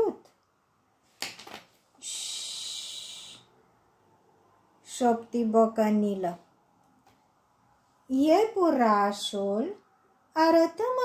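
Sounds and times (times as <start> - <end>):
woman shushing: 2.0 - 3.5
faint breathy sound: 2.0 - 4.6.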